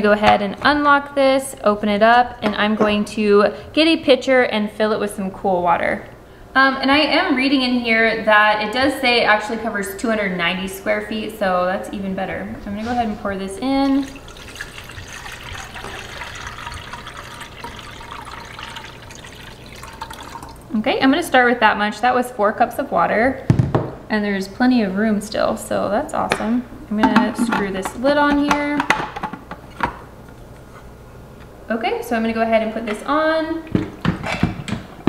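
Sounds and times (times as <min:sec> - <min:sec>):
water pouring into plastic tank: 0:13.8 - 0:20.7.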